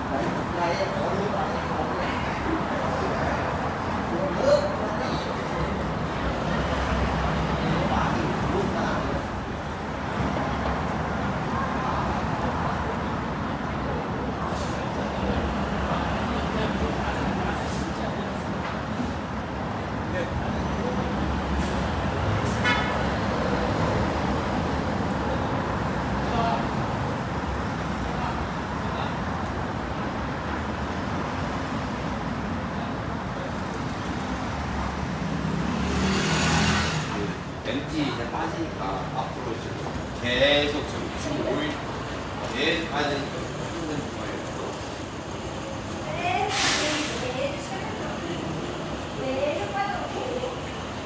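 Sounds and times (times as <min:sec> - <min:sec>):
city road traffic: 0:00.0 - 0:51.0.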